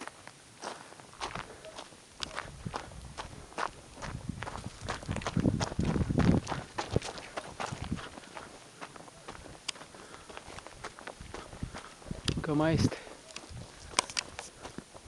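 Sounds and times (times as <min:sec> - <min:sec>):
footsteps on dry leaves: 0:00.0 - 0:15.0.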